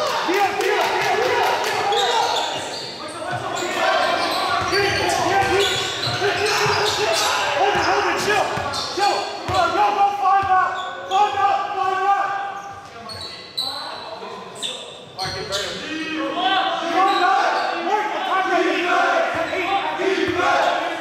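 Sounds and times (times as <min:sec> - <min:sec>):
players' voices: 0:00.0 - 0:21.0
sneakers squeaking: 0:01.5 - 0:18.3.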